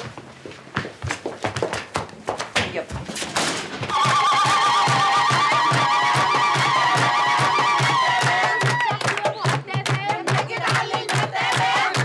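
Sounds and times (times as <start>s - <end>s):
woman ululating: 3.9s - 9.0s
frame drum beats: 3.9s - 12.0s.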